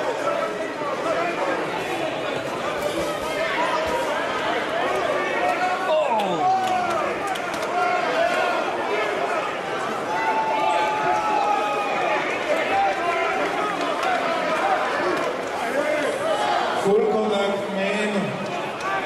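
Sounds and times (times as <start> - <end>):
overlapping crowd voices: 0.0 - 19.0.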